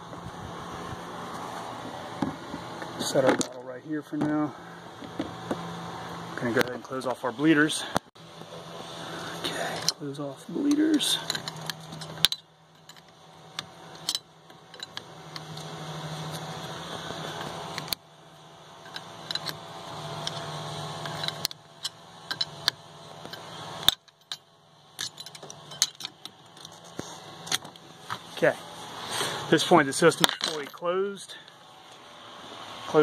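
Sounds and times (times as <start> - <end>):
low steady hum: 0.0 - 33.0.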